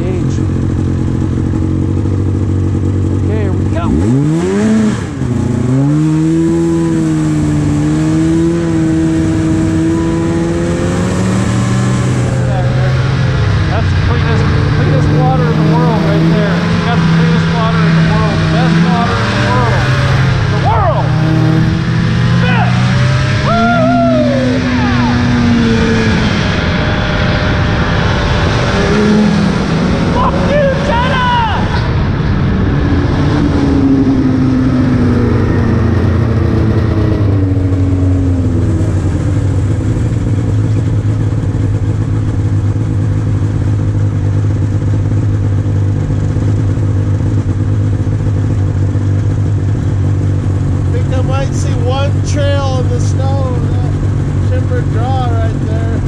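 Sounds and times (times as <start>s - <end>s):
snowmobile engines revving: 0.0s - 56.0s.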